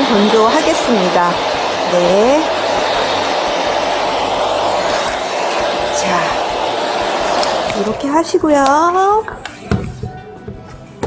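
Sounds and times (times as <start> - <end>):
hair dryer blowing: 0.0 - 10.1.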